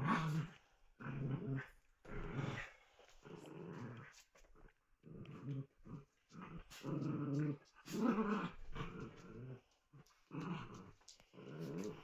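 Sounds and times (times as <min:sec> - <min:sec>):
small dogs play-growling: 0:00.0 - 0:12.0.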